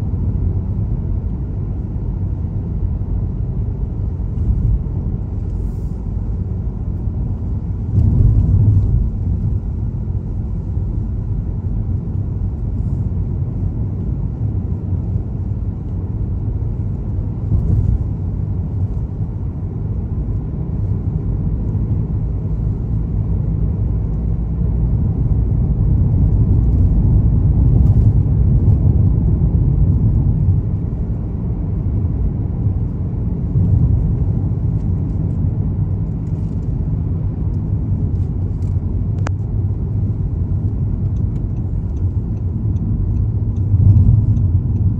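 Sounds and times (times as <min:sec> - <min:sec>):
car cabin road rumble: 0:00.0 - 0:44.9.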